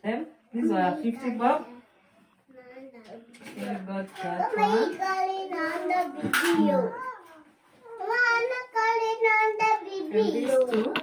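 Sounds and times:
child talking and vocalising: 4.4s - 11.0s.

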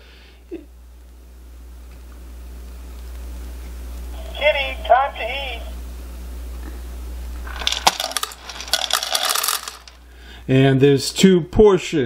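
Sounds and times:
kibble clattering into metal bowl: 7.5s - 10.0s.

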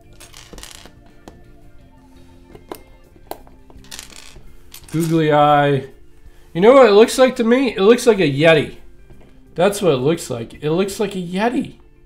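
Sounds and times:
soft background music: 0.0s - 12.0s
plastic bricks clicking and rattling: 0.1s - 1.0s.

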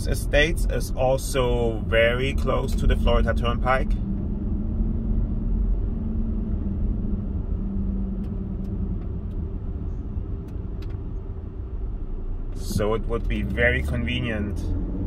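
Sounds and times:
car engine and tyres rumbling: 0.0s - 15.0s.

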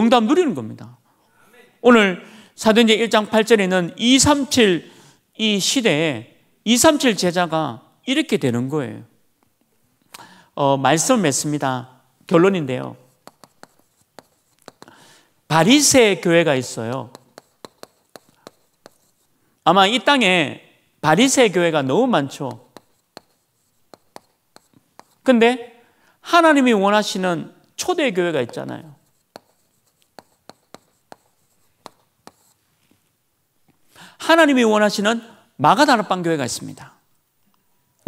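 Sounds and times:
chalk writing on chalkboard: 13.0s - 15.0s, 16.7s - 19.4s, 22.5s - 25.3s, 28.4s - 32.6s.

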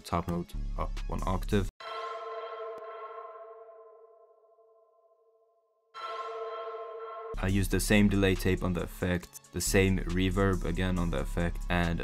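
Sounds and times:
synth bell chord ringing: 1.8s - 8.1s.

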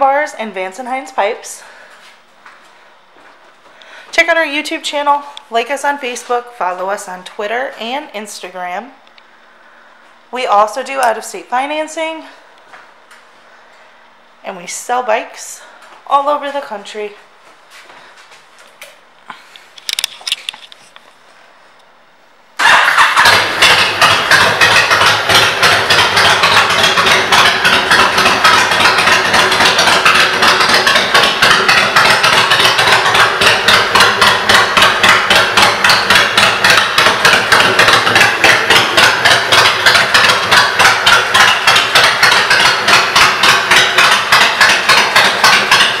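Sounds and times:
motorcycle engine idling: 22.6s - 46.0s.

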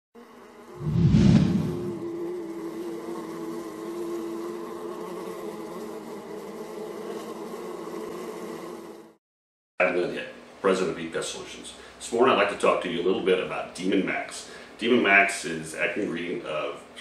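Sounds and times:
buzzing insect sound effect: 0.2s - 9.2s
low-pitched burst: 0.8s - 2.1s.

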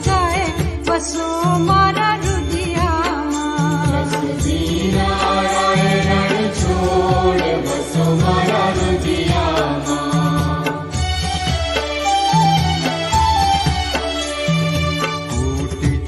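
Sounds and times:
instrumental accompaniment: 0.0s - 16.0s
devotional chant singing: 3.4s - 11.2s.

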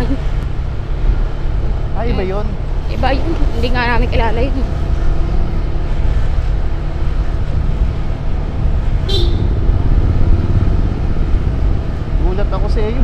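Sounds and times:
motorcycle engine: 0.0s - 13.0s
wind noise: 0.0s - 13.0s.

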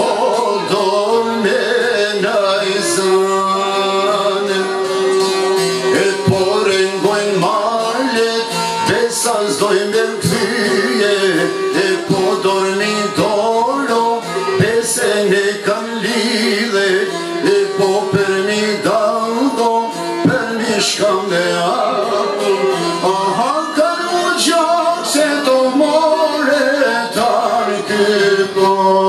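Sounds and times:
man singing: 0.0s - 29.0s
plucked lutes: 0.0s - 29.0s.

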